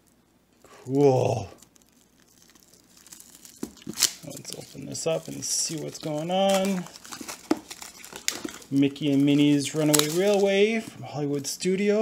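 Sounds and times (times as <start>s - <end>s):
plastic shrink wrap crinkling: 0.0s - 11.0s
sharp plastic crackles: 0.0s - 11.0s.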